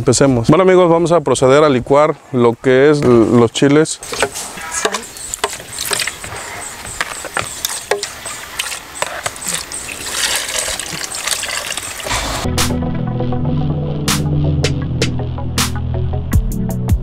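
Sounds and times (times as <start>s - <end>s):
background music: 12.1s - 17.0s.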